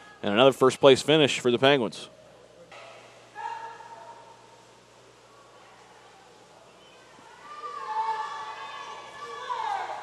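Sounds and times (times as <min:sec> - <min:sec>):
spectators shouting and cheering: 0:07.2 - 0:10.0.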